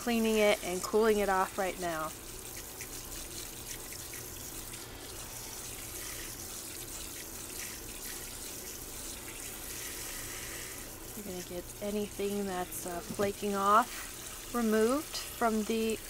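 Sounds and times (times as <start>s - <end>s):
faucet sprayer water running: 0.0s - 16.0s.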